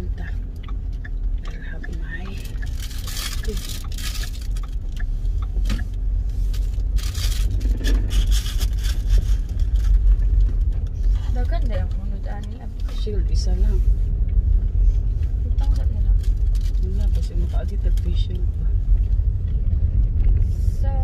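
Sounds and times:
car cabin road rumble: 0.0s - 21.0s.

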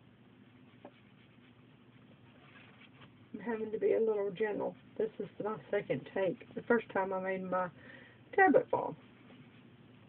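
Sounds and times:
tool scrubbing on paper: 0.5s - 3.2s, 8.4s - 10.0s.

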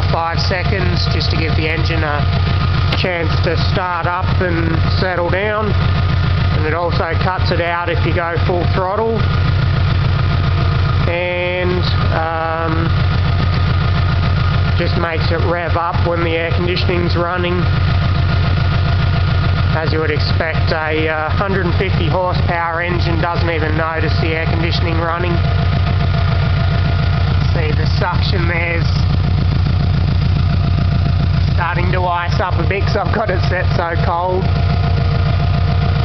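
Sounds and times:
air conditioning compressor: 0.0s - 36.0s
car engine idling: 0.0s - 36.0s.

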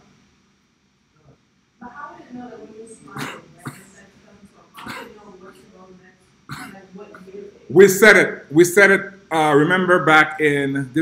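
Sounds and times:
faint indistinct talk: 1.2s - 7.8s
person coughing: 3.1s - 4.0s, 4.8s - 5.3s, 6.5s - 6.8s
throat clearing: 3.1s - 4.0s, 4.8s - 5.3s, 6.5s - 6.8s.

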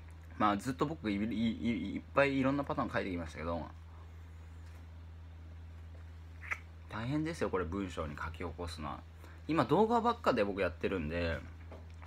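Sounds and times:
low electrical hum: 0.0s - 12.0s
sucking mouth sounds: 6.4s - 6.7s
lip smack: 6.4s - 6.8s.

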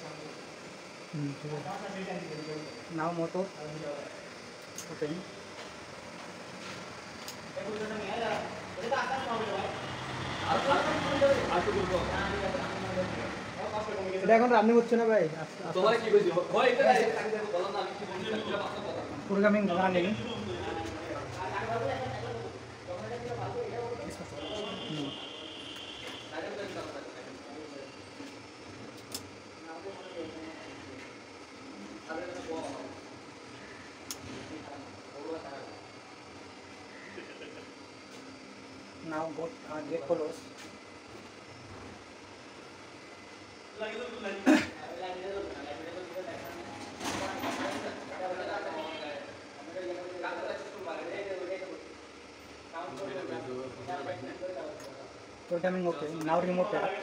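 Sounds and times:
people talking: 7.6s - 9.8s, 10.4s - 25.2s.

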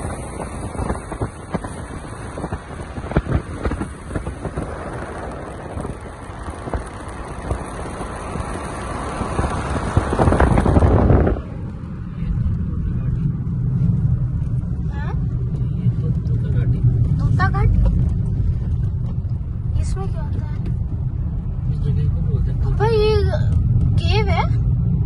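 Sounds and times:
car engine and tyre noise: 0.0s - 25.0s
wind rushing past car window: 0.0s - 25.0s.

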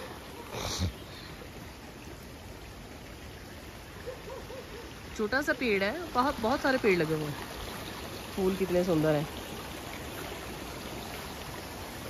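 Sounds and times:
mountain stream rushing: 0.0s - 12.0s.

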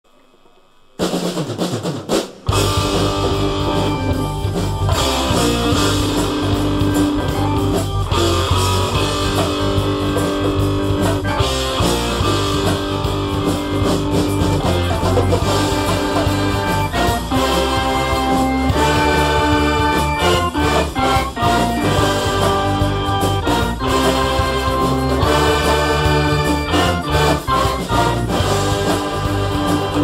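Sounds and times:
concert band playing rock medley: 1.0s - 30.0s.

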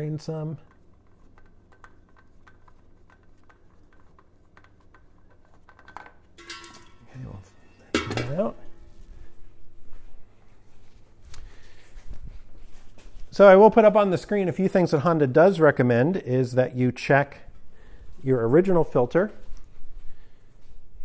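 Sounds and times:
oil filter unscrewing with ticking: 0.6s - 7.0s.

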